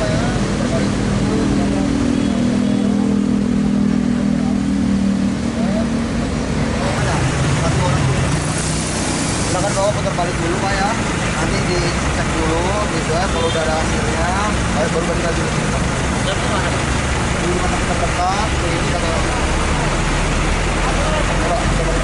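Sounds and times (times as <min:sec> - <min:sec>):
car engines idling: 0:00.0 - 0:22.0.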